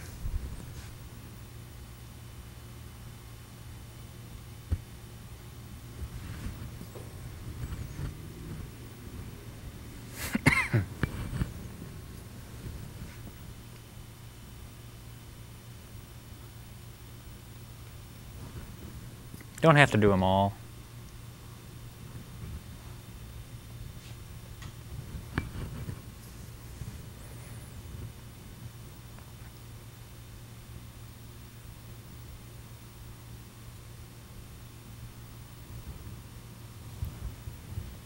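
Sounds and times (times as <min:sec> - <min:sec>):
steady low hum: 0:00.0 - 0:38.0
person coughing: 0:10.2 - 0:11.0.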